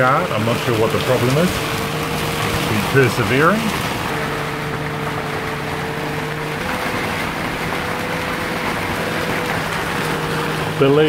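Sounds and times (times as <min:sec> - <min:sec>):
heavy rain on a boat: 0:00.0 - 0:11.0
low steady hum: 0:00.0 - 0:11.0.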